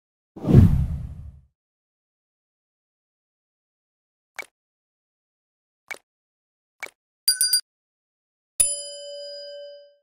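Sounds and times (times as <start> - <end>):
deep whoosh: 0.4 - 1.4.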